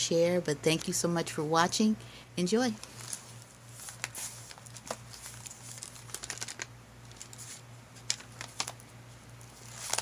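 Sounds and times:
paper pages rustling: 0:02.8 - 0:10.0.

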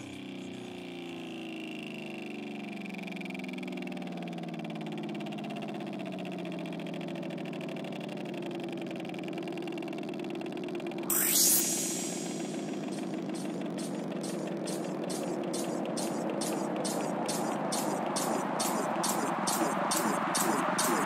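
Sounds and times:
wavering synth drone: 0:11.0 - 0:21.0.

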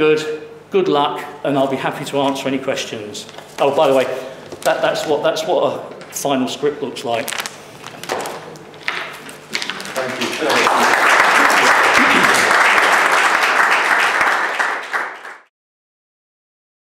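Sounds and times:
audience applauding: 0:09.8 - 0:15.5.

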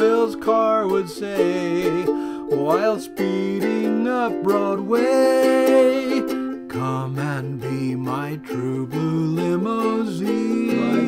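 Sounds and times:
man singing: 0:00.0 - 0:11.0
ukulele strumming: 0:00.0 - 0:11.0.

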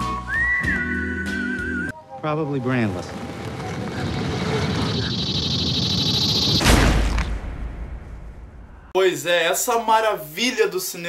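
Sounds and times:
rushing rumbling noise: 0:02.9 - 0:08.9.

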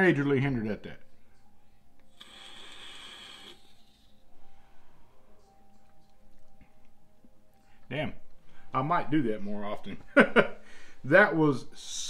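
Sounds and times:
vape coil hissing: 0:02.1 - 0:04.2.

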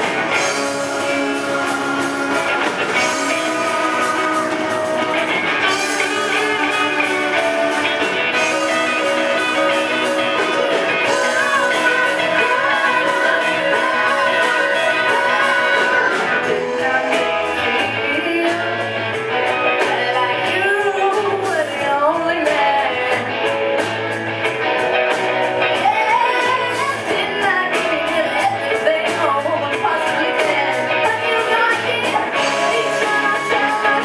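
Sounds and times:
person singing: 0:00.0 - 0:23.4, 0:25.7 - 0:34.0
bass line: 0:00.0 - 0:34.0
drum kit beat: 0:00.0 - 0:34.0
electric guitars: 0:00.0 - 0:34.0.

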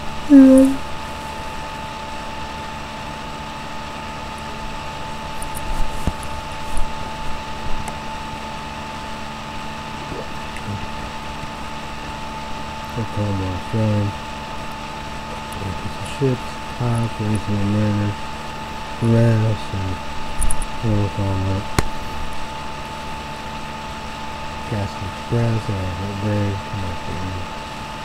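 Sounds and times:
background hum and hiss: 0:00.0 - 0:28.0
murmur of voice: 0:00.3 - 0:00.8.

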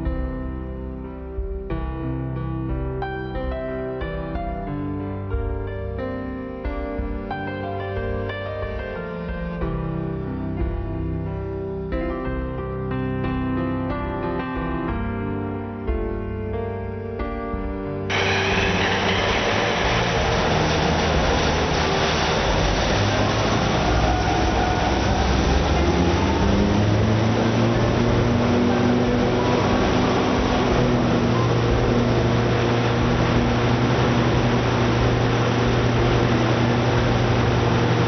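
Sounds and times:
generator engine drone: 0:18.1 - 0:38.0
low hum: 0:18.1 - 0:38.0.

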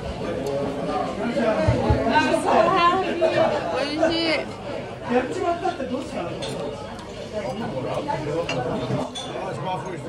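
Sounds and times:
busy eatery background noise: 0:00.0 - 0:10.0.

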